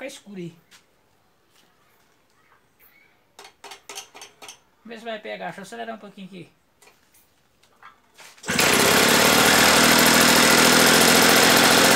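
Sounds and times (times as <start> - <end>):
man speaking: 4.8 - 6.6.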